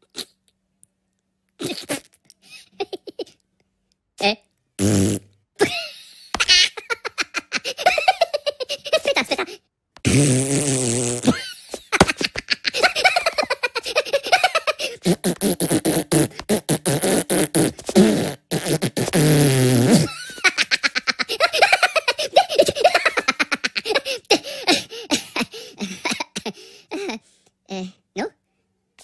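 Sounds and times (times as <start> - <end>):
cartoon voice blowing raspberries: 1.6 - 2.3, 4.2 - 5.3, 10.0 - 11.4, 13.8 - 20.2
giggly laughter: 2.5 - 3.4, 5.6 - 9.6, 11.3 - 15.0, 20.0 - 27.2.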